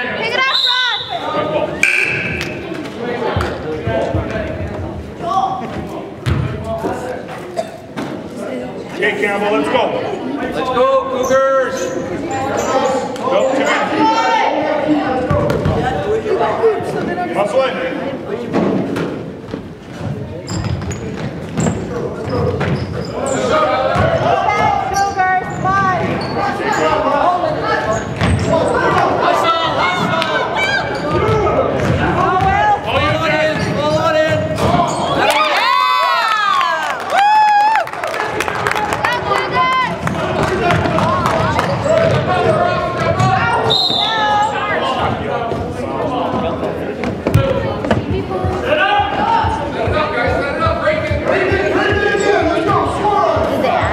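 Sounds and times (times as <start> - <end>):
sneakers squeaking: 0.2 - 4.9, 5.6 - 8.3, 11.1 - 14.1, 18.6 - 29.2, 29.8 - 35.4, 40.6 - 53.9
basketball bouncing on floor: 6.2 - 6.5.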